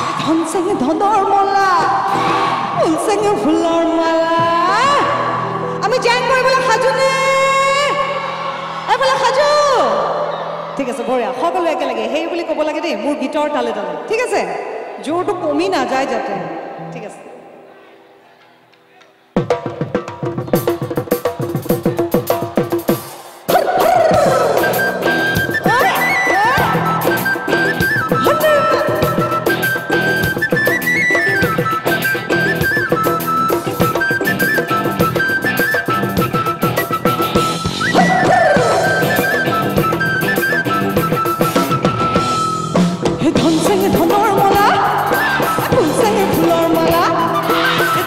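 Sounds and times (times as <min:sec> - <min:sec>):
steady drum rhythm: 0:19.4 - 0:48.0
flute melody: 0:23.5 - 0:48.0.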